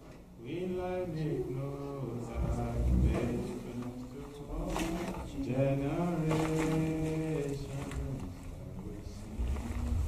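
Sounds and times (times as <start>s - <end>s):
man singing slow worship song: 0.4s - 10.0s.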